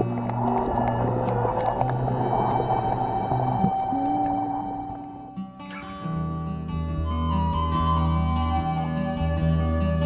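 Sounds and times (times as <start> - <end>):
slow ambient music: 0.0 - 10.0.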